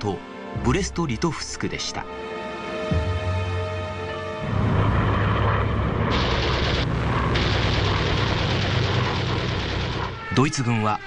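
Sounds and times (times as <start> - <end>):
background music: 0.0 - 11.0
propeller aircraft engine roar: 2.4 - 10.4.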